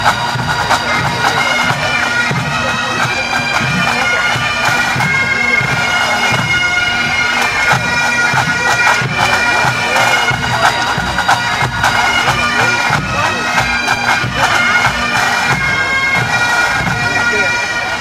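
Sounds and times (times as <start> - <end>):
bagpipes playing a tune: 0.0 - 18.0
drums beating: 0.0 - 18.0.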